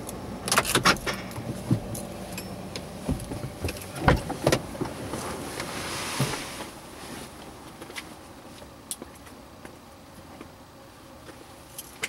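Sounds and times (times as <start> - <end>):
clicks and knocks in car cabin: 0.4 - 5.3.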